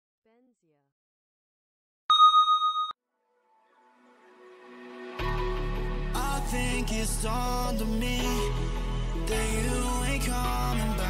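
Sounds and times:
electronic bell ding: 2.1 - 3.0.

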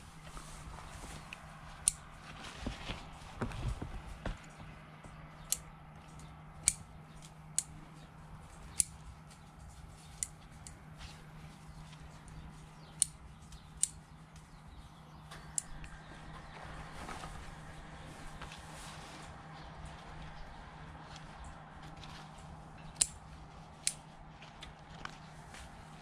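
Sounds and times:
leaves rustling: 0.0 - 4.6, 15.9 - 26.0
faint steady hum: 0.0 - 26.0
pruning shears snipping: 1.2 - 2.3, 5.3 - 11.0, 11.7 - 16.0, 22.7 - 25.8.

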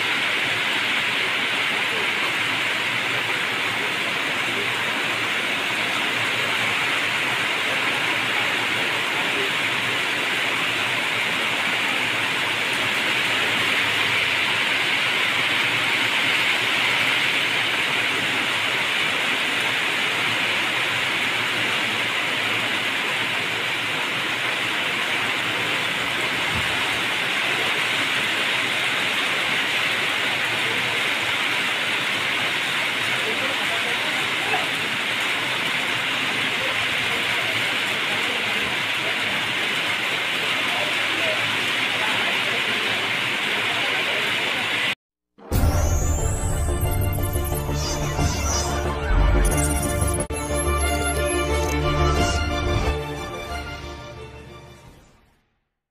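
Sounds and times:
rain falling: 0.0 - 54.9.

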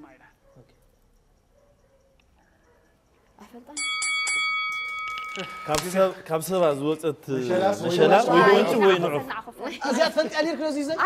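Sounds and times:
bell ringing: 3.6 - 6.8.

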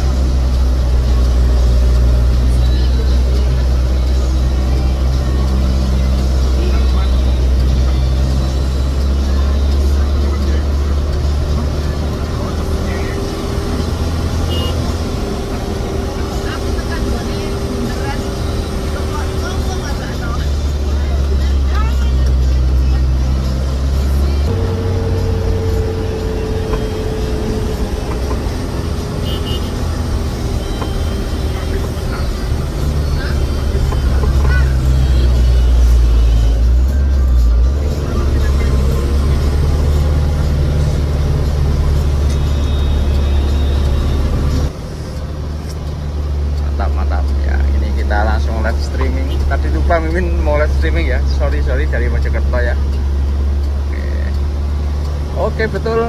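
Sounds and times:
diesel engine labouring: 0.0 - 56.0.

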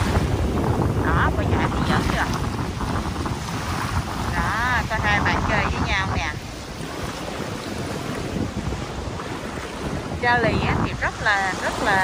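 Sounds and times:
surf: 0.0 - 12.0
wind buffeting microphone: 0.0 - 12.0.

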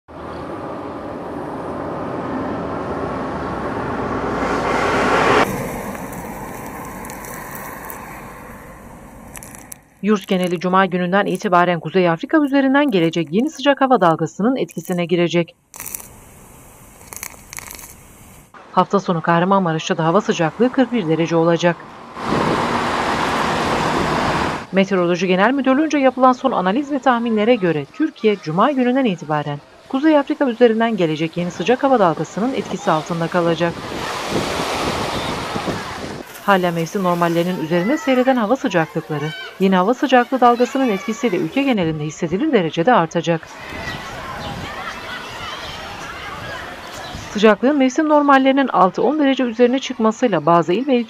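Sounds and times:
vehicle road noise on asphalt: 0.1 - 15.0, 15.7 - 50.9
street traffic hum: 0.1 - 51.0.

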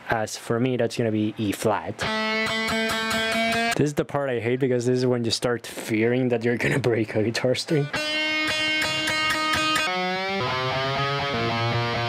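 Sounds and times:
electric guitar being tuned: 2.0 - 3.8, 7.7 - 12.0
guitar string pitch sliding upward: 2.0 - 3.8, 7.8 - 12.0
low guitar string plucked: 2.0 - 3.8.

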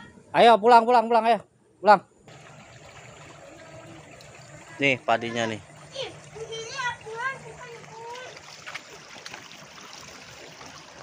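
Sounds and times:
water flowing in a channel: 2.3 - 11.0.

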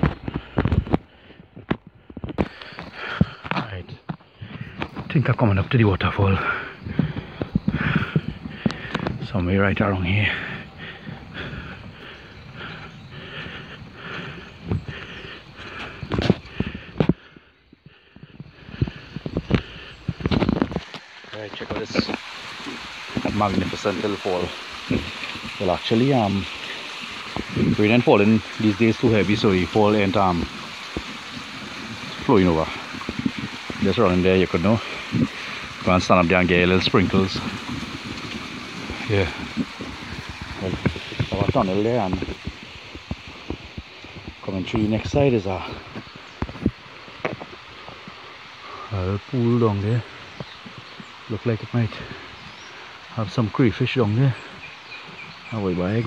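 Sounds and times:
small waterfall splashing: 19.1 - 56.0
bicycle tyre hiss on wet road: 19.8 - 55.5.

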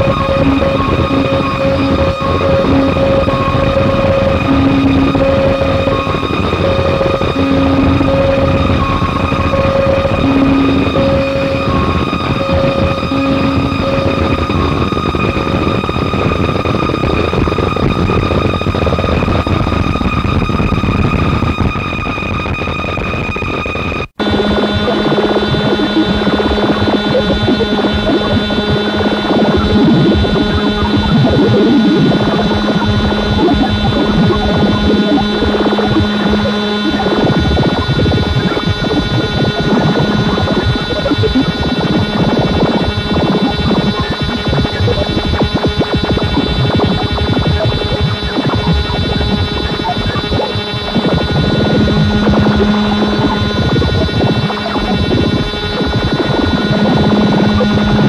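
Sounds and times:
low drone: 0.0 - 17.4
dense crackle: 0.0 - 58.0
harsh electronic noise music: 0.0 - 58.0
stuttering on-off tone: 0.0 - 58.0.

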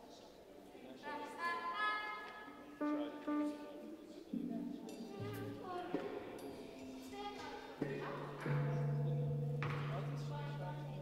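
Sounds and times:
bowed string instrument: 2.6 - 11.0.

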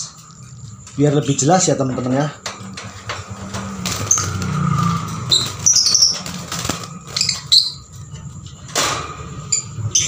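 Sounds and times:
wire cage clicks and rattles: 0.8 - 9.8
lovebirds squeaking: 3.8 - 8.1.

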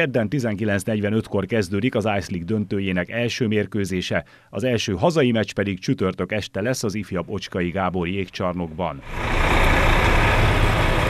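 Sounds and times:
bus engine pulling away: 9.0 - 11.0.

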